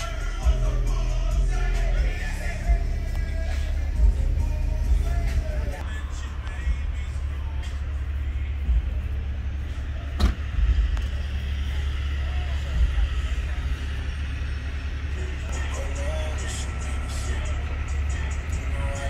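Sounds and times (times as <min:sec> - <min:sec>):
diesel truck engine idling: 0:00.0 - 0:19.0.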